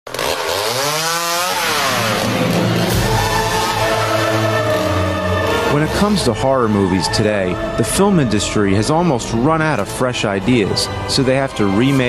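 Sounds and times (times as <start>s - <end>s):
chainsaw engine revving: 0.1s - 8.0s.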